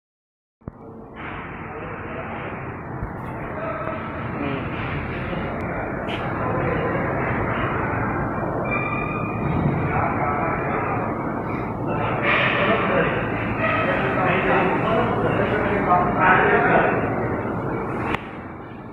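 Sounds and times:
indistinct voices: 0:00.6 - 0:18.9
machinery hum and rumble: 0:00.6 - 0:18.9.

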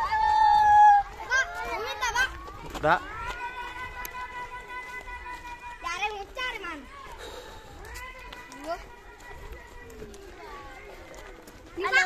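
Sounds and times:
children talking and calling: 0:00.0 - 0:12.0.

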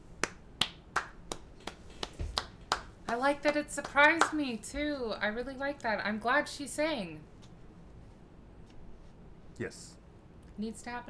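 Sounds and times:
person clapping hands: 0:00.2 - 0:04.4.

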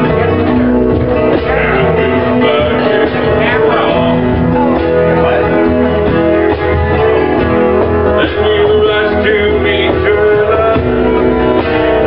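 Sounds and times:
country guitars strumming: 0:00.0 - 0:12.0.

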